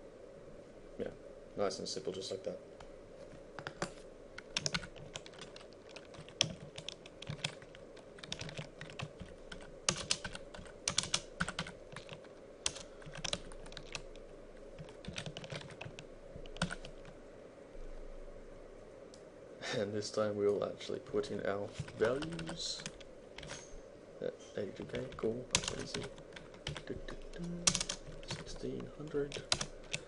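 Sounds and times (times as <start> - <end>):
typing on computer keyboard: 3.6 - 14.2, 14.8 - 17.1, 21.8 - 23.6, 24.9 - 30.0.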